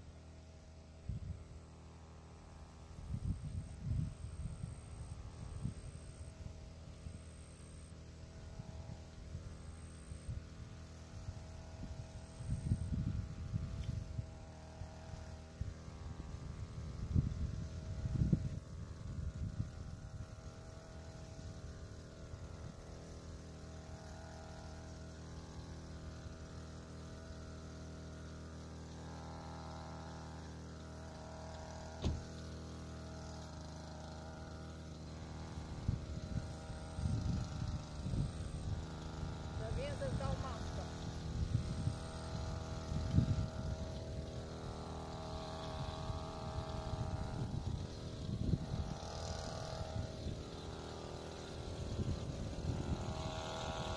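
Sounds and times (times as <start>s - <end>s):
distant small engine running: 0.0s - 53.9s.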